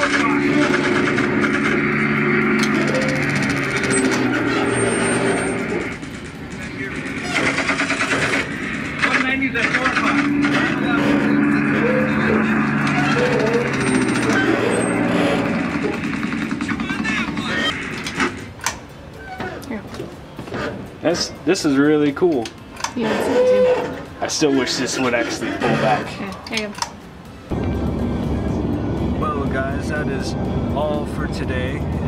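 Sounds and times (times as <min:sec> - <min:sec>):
indistinct voices: 0:00.0 - 0:18.0, 0:21.0 - 0:26.9
aircraft engines droning: 0:00.0 - 0:32.0
machine-gun fire bursts: 0:07.2 - 0:10.6.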